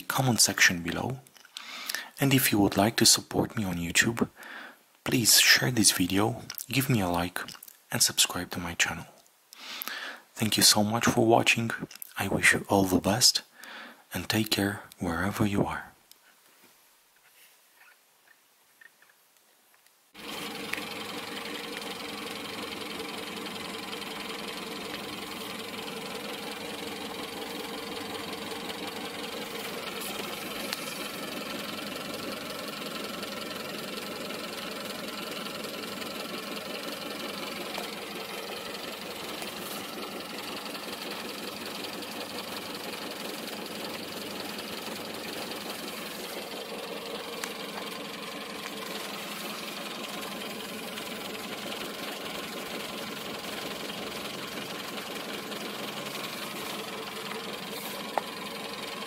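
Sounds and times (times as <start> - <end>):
car engine idling: 20.2 - 59.0.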